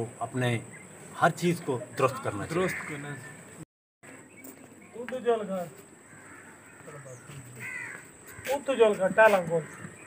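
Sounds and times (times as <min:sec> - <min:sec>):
crow cawing: 0:02.0 - 0:03.4, 0:05.9 - 0:10.0.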